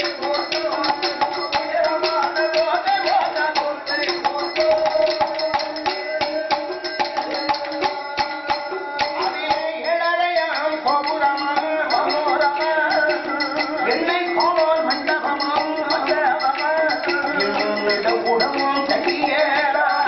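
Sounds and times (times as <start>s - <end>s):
bells jingling: 0.0s - 20.0s.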